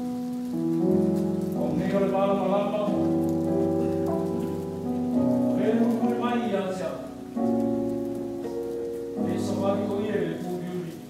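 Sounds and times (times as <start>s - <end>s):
organ chords: 0.0s - 11.0s.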